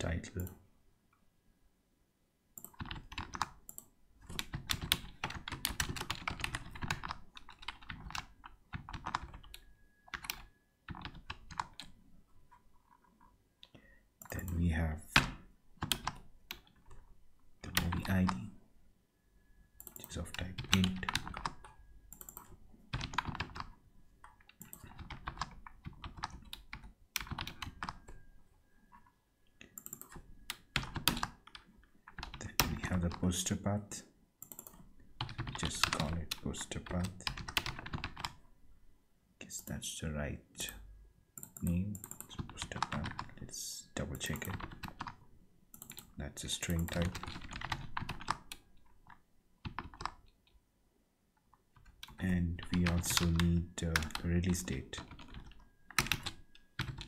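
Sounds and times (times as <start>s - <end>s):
typing on computer keyboard: 2.6s - 13.3s, 15.2s - 17.0s, 19.8s - 28.3s, 28.9s - 33.2s, 34.4s - 38.4s, 41.4s - 43.4s, 44.1s - 50.6s, 51.8s - 57.0s.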